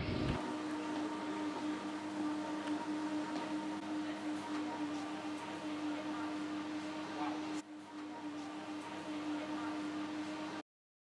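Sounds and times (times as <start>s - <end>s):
low machine hum: 0.0s - 10.6s.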